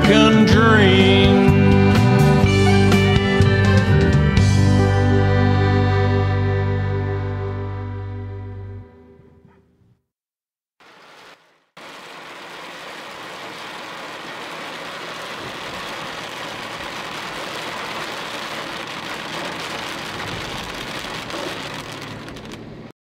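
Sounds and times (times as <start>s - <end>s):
rain on car windshield and roof: 10.8s - 22.9s.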